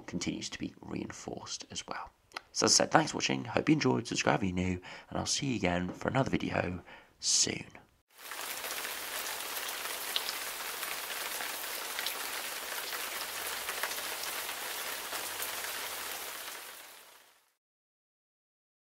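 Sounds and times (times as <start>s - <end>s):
steady rain falling: 8.1s - 17.6s.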